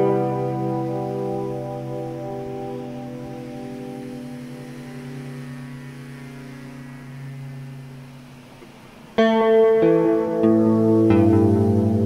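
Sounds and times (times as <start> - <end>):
guitar chord with effects ringing: 0.0 - 12.0.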